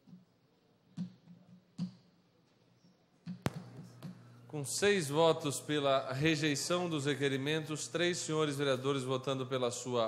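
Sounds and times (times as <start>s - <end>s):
low electrical hum: 3.3s - 10.0s.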